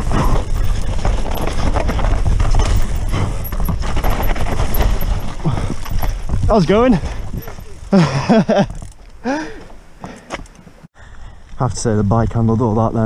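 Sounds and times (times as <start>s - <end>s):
bike chain and frame rattling: 0.0s - 9.4s
tyres rumbling over dirt: 0.0s - 9.4s.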